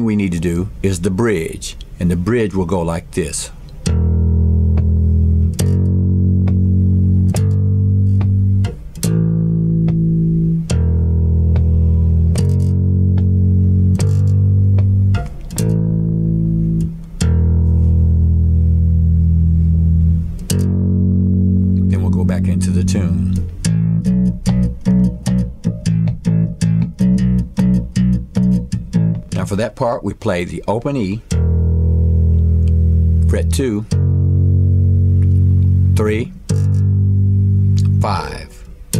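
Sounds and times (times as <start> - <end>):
electric bass riff: 0.0 - 38.9.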